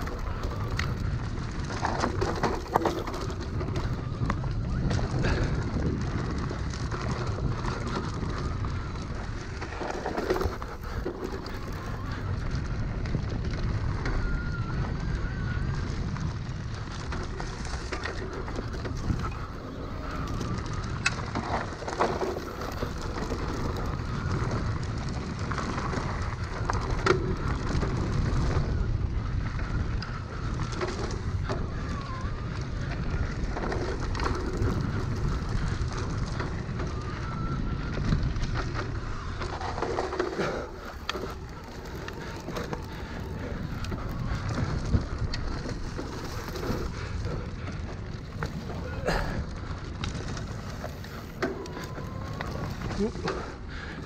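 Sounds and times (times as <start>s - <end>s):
tyre and wind noise: 0.0s - 54.0s
tyres crackling over dry leaves: 0.0s - 54.0s.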